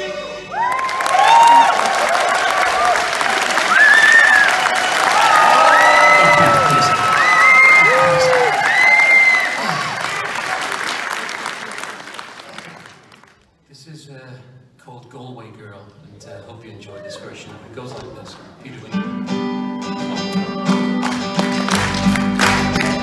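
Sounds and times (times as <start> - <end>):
long held cheering calls: 0.5 - 10.7
audience applauding: 0.5 - 13.4, 20.7 - 23.0.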